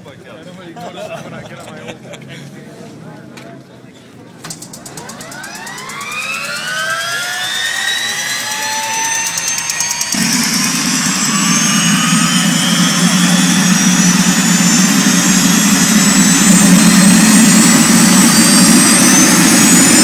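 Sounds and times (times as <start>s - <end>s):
jet turbine engine whine: 4.5s - 20.0s.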